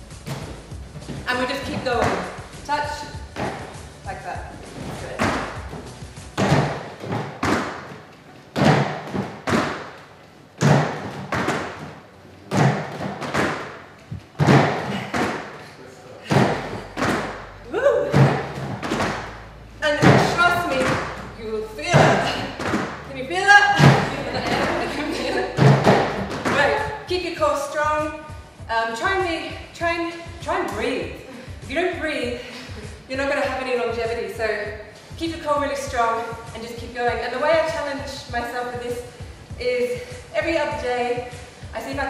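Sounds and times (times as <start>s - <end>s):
trainers landing on step platforms: 4.7s - 10.0s, 10.6s - 15.6s, 16.2s - 17.4s, 18.0s - 21.2s, 23.8s - 26.9s
people breathing and vocalizing: 14.0s - 17.0s, 31.2s - 31.7s, 32.4s - 33.1s.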